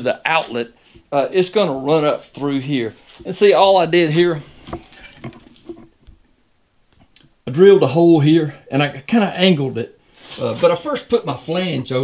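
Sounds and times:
faint knocks and handling: 0:04.2 - 0:06.3.

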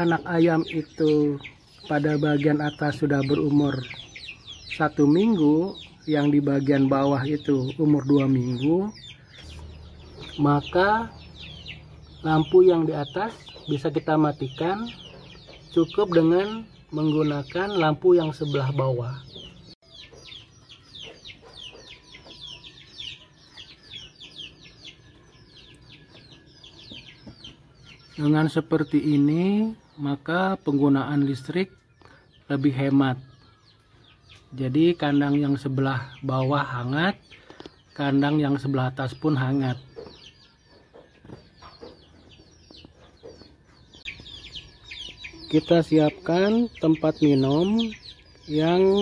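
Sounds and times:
chickens clucking: 0:00.0 - 0:49.0
chicks peeping: 0:00.0 - 0:49.0.

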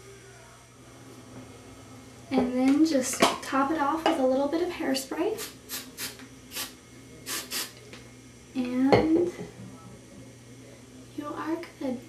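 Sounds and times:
aerosol can spraying: 0:05.4 - 0:07.8.

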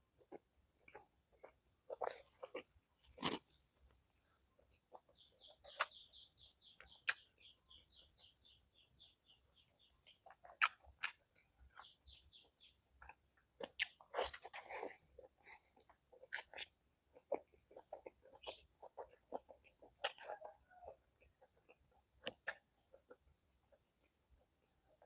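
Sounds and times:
chewing and biting: 0:00.2 - 0:03.6, 0:10.2 - 0:11.2, 0:13.0 - 0:23.3
faint high chirps: 0:04.6 - 0:12.8
mouth clicks and smacks: 0:04.9 - 0:06.0, 0:06.8 - 0:07.3, 0:10.2 - 0:11.2, 0:13.0 - 0:15.1, 0:15.8 - 0:20.5, 0:21.2 - 0:23.2.

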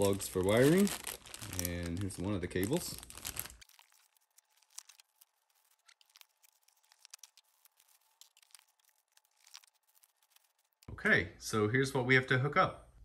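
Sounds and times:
plastic bag crinkling: 0:00.0 - 0:10.9.

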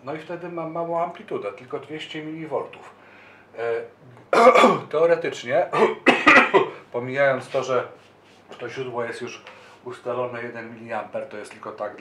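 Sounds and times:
man clearing throat: 0:04.3 - 0:04.9, 0:05.7 - 0:06.8.

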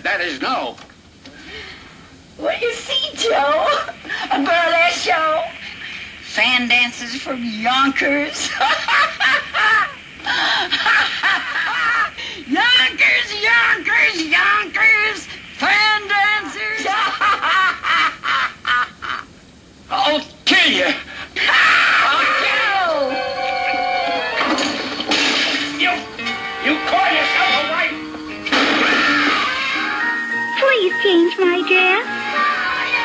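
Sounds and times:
music with held notes: 0:25.7 - 0:33.0
high child-like voice speaking: 0:30.6 - 0:32.1.

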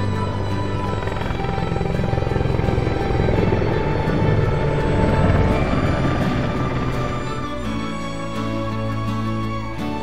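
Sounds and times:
background music with held tones: 0:00.0 - 0:10.0
helicopter rotors pulsing: 0:00.0 - 0:10.0.

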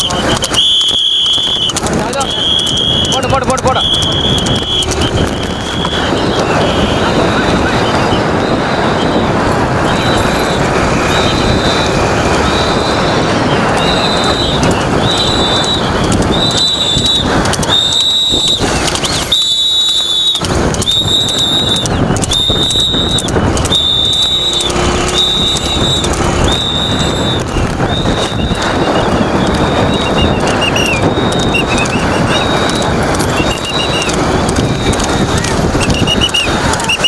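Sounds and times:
moving vehicle rushing noise: 0:00.0 - 0:37.0
wind: 0:00.0 - 0:37.0.

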